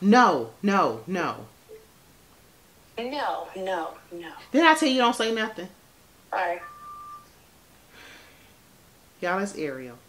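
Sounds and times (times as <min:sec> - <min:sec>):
thin steady beep: 0:06.3 - 0:07.4
faint breath: 0:07.9 - 0:08.7.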